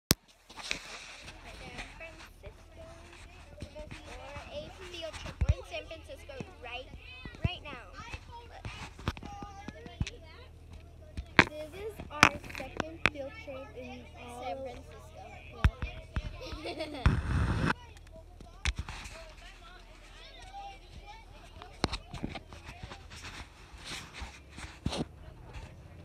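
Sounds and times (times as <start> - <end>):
children chattering: 0.7 - 26.0.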